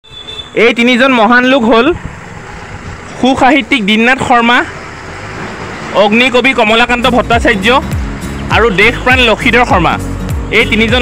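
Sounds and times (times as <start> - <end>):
person speaking: 5.9 - 11.0.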